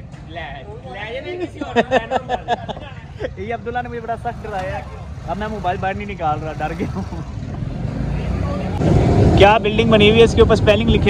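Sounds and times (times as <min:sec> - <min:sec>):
motorcycle engine rumble: 0:01.6 - 0:11.0.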